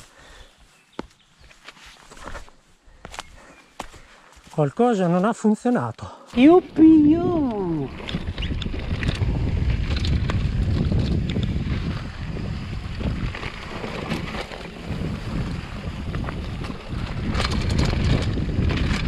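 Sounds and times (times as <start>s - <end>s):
tyres rumbling on dirt: 6.3s - 19.0s
wind rushing over microphone: 6.4s - 19.0s
bike clicks and rattles: 7.3s - 19.0s.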